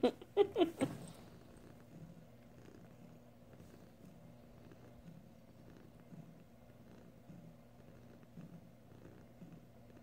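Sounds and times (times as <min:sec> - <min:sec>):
cat purring: 0:00.0 - 0:10.0.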